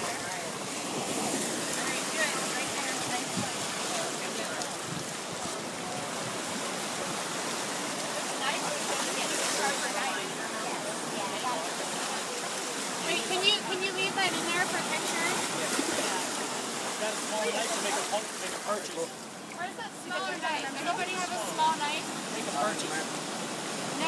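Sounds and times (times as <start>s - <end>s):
people talking: 0.0s - 0.6s, 1.7s - 4.8s, 7.9s - 23.1s
surf washing in: 0.0s - 24.0s
higher voices: 19.0s - 23.2s.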